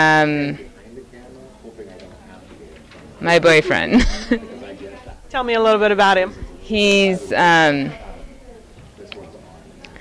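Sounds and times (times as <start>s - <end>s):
murmur of distant voices: 0.0s - 10.0s.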